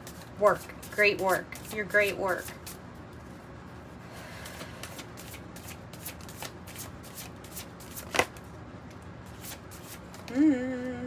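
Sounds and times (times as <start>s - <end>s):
cards being shuffled: 4.5s - 10.3s.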